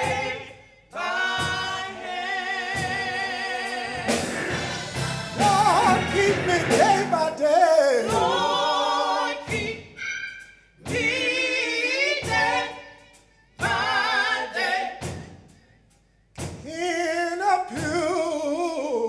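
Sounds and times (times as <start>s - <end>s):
person singing with vibrato: 0.0s - 15.0s.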